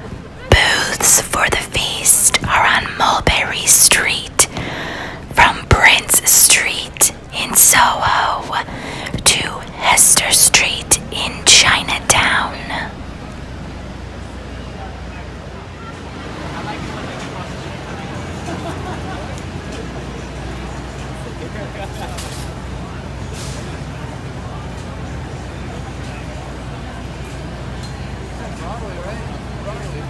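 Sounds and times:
steady background hum: 0.0 - 15.9
person whispering: 0.4 - 13.1.

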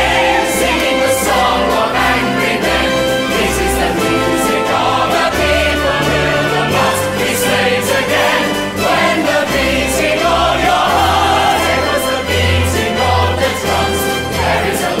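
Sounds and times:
chorus singing: 0.0 - 15.0
orchestra playing: 0.0 - 15.0.

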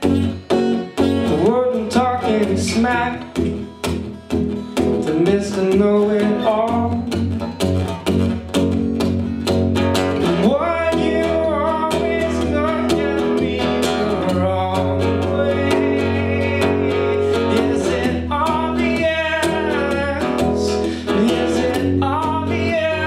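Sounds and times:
acoustic guitar strumming: 0.0 - 23.0
man singing: 1.2 - 3.7, 5.0 - 7.6, 10.2 - 23.0.

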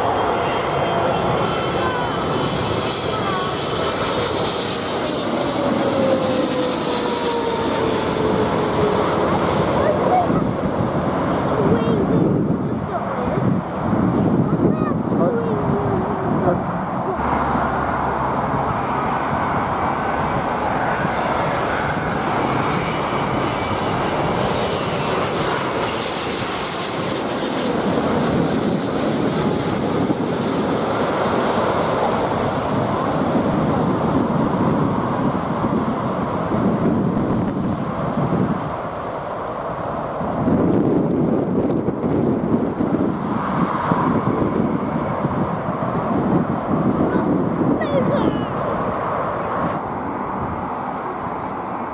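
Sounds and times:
high engine whine: 0.0 - 51.9
jet engines roaring: 0.0 - 51.9.

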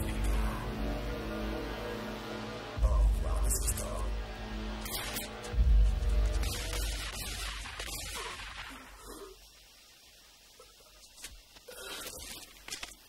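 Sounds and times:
film soundtrack music: 0.0 - 10.2.

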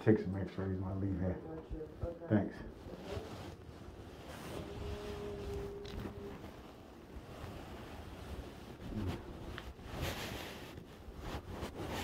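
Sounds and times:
microphone rubbing noise: 2.8 - 12.0.

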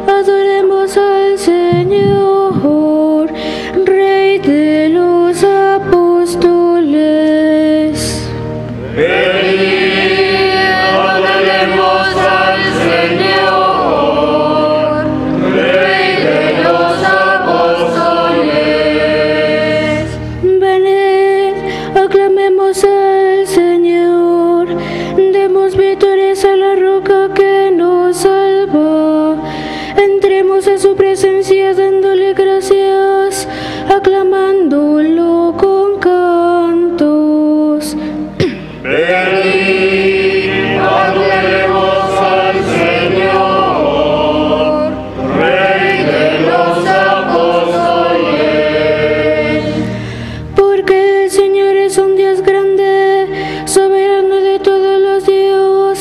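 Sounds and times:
voices chanting a hymn: 7.9 - 20.5, 38.4 - 50.7
breathy hiss: 49.6 - 50.6.

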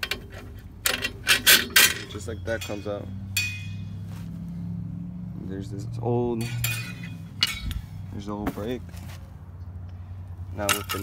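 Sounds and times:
metallic clink of steel spring: 0.8 - 3.9, 6.4 - 7.8.

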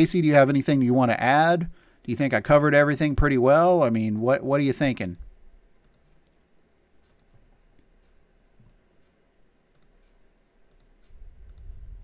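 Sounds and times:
faint computer clicks: 5.8 - 11.8
low rumble: 11.2 - 12.0.

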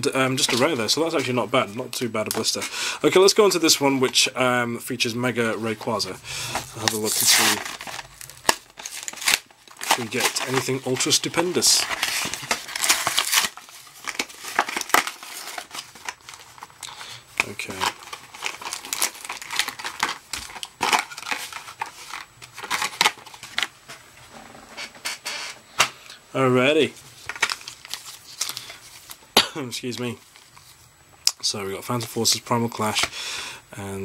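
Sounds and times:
rustling packaging: 0.0 - 25.4, 26.8 - 31.0
plastic blister pack tearing: 6.4 - 23.7, 27.2 - 29.2.

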